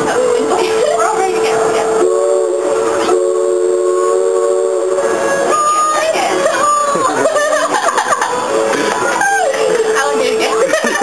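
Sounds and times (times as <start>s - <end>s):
steamboat whistle: 0.1s - 10.6s.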